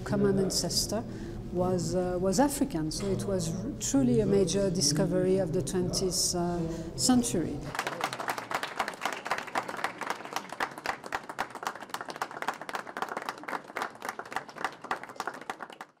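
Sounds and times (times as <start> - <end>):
people applauding: 7.7 - 16.0.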